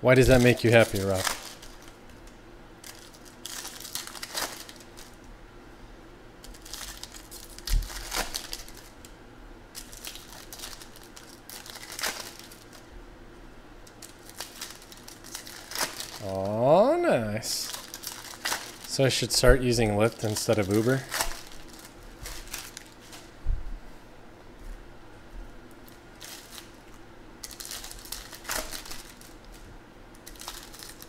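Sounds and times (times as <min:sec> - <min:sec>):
cards being handled: 0:00.2 - 0:05.2, 0:17.6 - 0:23.3
foil wrappers crinkling and tearing: 0:00.2 - 0:05.3, 0:06.4 - 0:09.1, 0:09.7 - 0:12.9, 0:13.8 - 0:23.4, 0:25.8 - 0:31.0.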